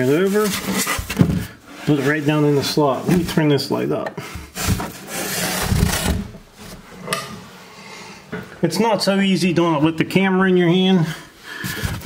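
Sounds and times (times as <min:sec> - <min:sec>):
foam board scraping on wood: 0:04.6 - 0:06.8.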